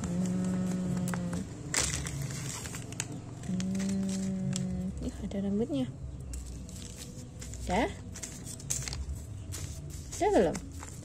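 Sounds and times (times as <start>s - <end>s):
crinkling of foil mat: 0.0s - 5.2s, 6.4s - 11.0s.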